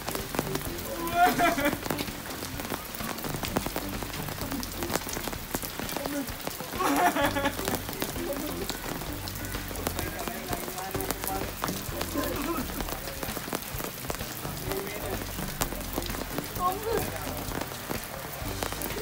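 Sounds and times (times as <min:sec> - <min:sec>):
person's voice: 0:00.0 - 0:19.0
steady rain falling: 0:00.0 - 0:19.0.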